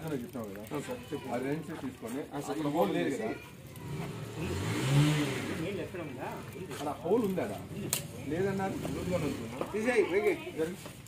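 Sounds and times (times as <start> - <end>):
vehicle engine passing by: 3.7 - 9.7.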